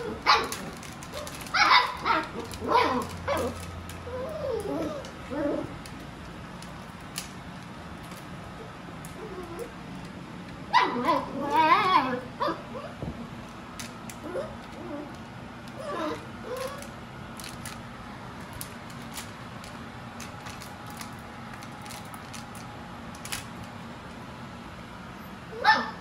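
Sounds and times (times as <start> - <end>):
puppies barking and yipping: 0.0 - 5.8, 10.7 - 13.0, 14.1 - 17.5, 25.5 - 26.0
puppies whining: 0.0 - 6.0, 8.5 - 10.0, 10.7 - 13.1, 14.0 - 17.7, 25.5 - 26.0.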